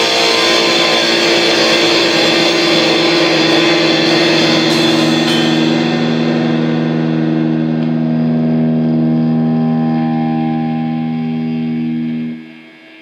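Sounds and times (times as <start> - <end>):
distorted electric guitar chord: 0.0 - 13.0.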